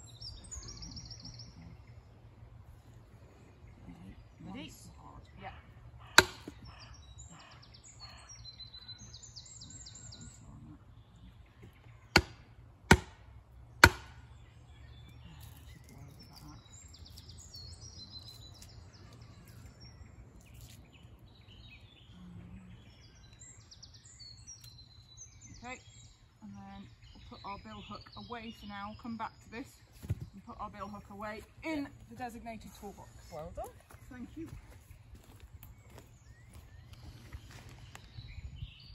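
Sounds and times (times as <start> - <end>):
birds chirping: 0.0 - 38.9
log knocking on billhook: 6.2 - 6.6.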